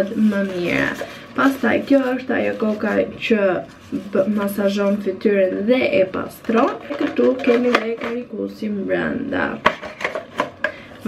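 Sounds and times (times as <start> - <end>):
paper rustling: 0.0 - 4.9.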